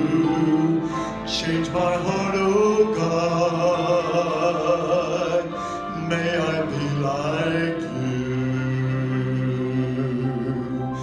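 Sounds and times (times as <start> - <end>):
man singing solo: 0.0 - 11.0.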